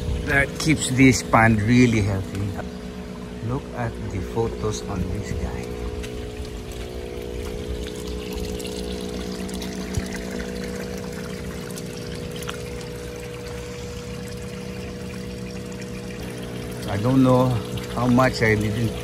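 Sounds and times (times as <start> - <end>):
steady low hum: 0.0 - 19.0
water trickling into pond: 0.0 - 19.0.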